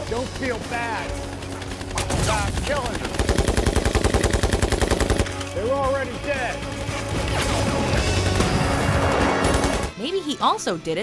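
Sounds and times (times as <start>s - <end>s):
machine gun burst: 1.4s - 5.5s.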